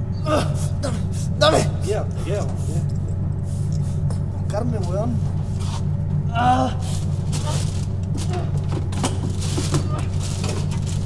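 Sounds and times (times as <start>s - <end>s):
steady low drone: 0.0s - 11.0s
person moaning or grunting: 0.2s - 2.4s, 6.3s - 7.7s.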